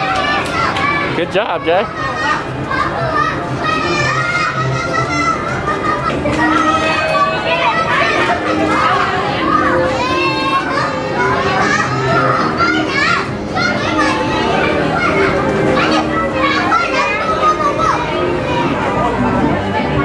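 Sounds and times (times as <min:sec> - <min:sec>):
children shouting and chattering: 0:00.0 - 0:20.0.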